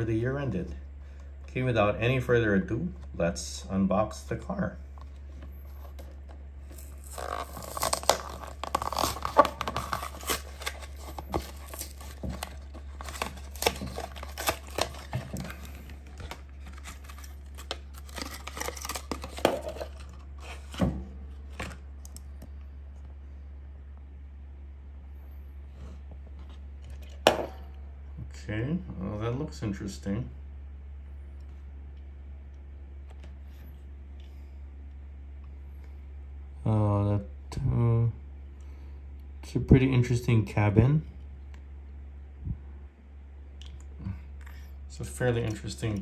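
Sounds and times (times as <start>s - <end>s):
steady low hum: 0.0s - 46.0s
plastic blister crackling: 5.7s - 20.2s
cardboard tearing: 6.7s - 20.8s.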